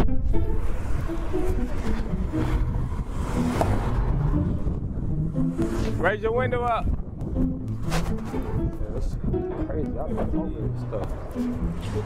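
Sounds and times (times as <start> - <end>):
cars driving by: 0.0 - 8.8, 9.6 - 12.0.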